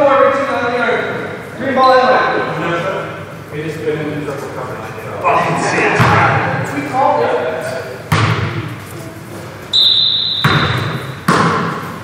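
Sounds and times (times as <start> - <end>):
basketball bouncing on gym floor: 6.0 - 6.3, 8.1 - 8.6, 10.2 - 12.0
high steady tone: 9.8 - 10.8.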